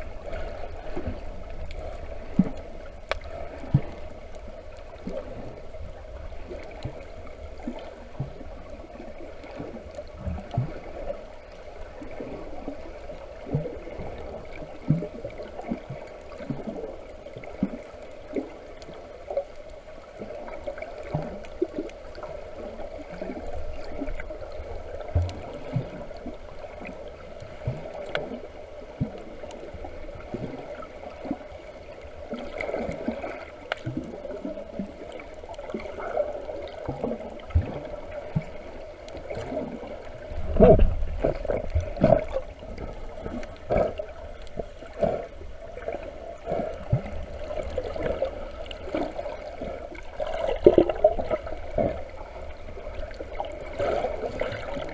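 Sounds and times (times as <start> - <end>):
muffled underwater wash: 0.0 - 54.9.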